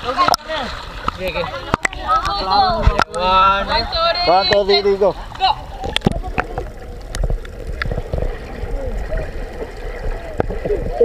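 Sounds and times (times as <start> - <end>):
low underwater rumble: 0.0 - 11.0
underwater bubbles: 0.0 - 11.0.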